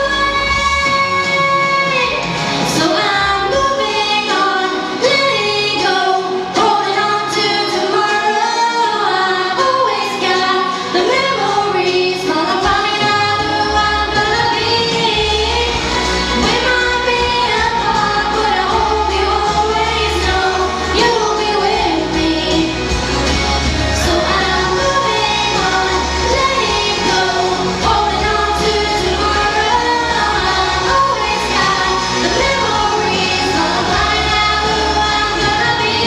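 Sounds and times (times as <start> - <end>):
steady bass line: 0.0 - 4.0, 12.3 - 36.0
woman singing into a microphone: 0.0 - 23.1, 23.9 - 36.0.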